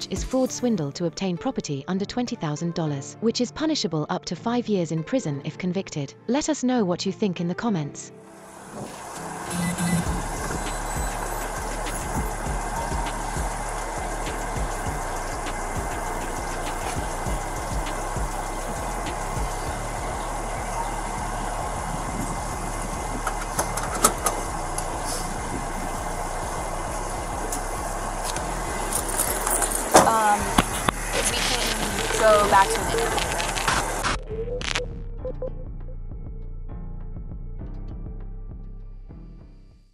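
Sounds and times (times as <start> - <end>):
vehicle engine humming: 8.6 - 34.1.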